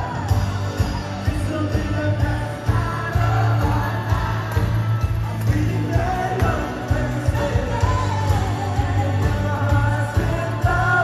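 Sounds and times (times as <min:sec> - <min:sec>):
bass guitar: 0:00.0 - 0:11.0
drums: 0:00.0 - 0:11.0
electric guitars: 0:00.0 - 0:11.0
lead vocal singing: 0:00.0 - 0:11.0.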